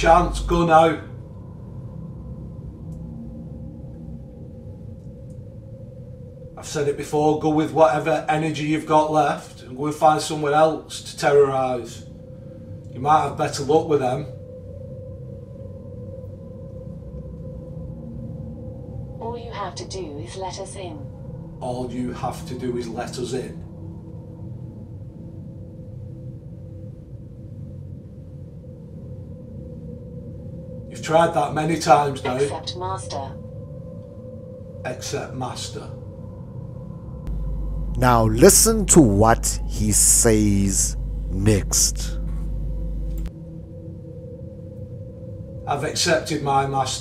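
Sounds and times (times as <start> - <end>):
deep low hum: 0.0 - 0.7, 37.3 - 43.3
steady low drone and rumble: 0.0 - 11.0, 37.1 - 43.7
faint steady tone: 37.3 - 43.3.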